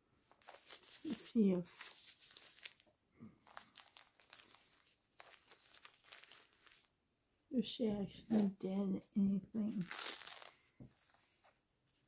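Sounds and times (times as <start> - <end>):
cloth rustling and crinkling: 0.2 - 7.0, 9.6 - 12.0.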